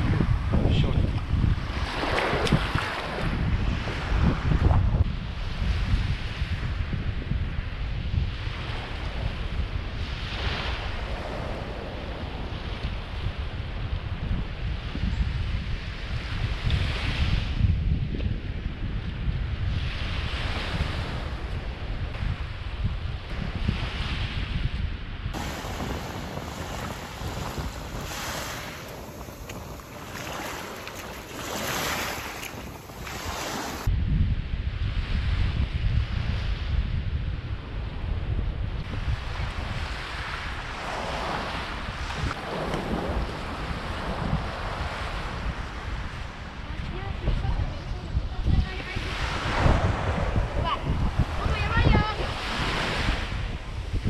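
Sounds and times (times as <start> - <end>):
small waves washing up shore: 0.0 - 6.9, 7.6 - 14.9, 19.6 - 24.4, 25.3 - 33.9, 38.8 - 54.0
wind buffeting microphone: 0.0 - 54.0.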